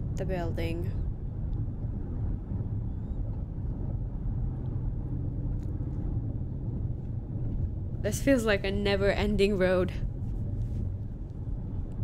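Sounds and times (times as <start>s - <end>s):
car engine rumble from cabin: 0.0s - 12.0s.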